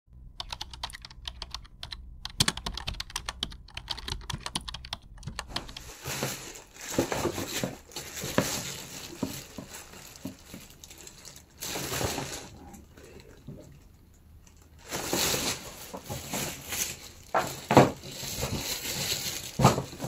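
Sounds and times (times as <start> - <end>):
plastic bag crinkling: 0.7 - 20.0.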